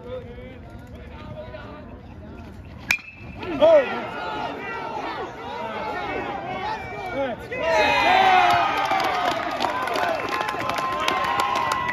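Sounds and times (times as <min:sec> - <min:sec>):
metal bat striking ball: 0:02.9 - 0:03.3.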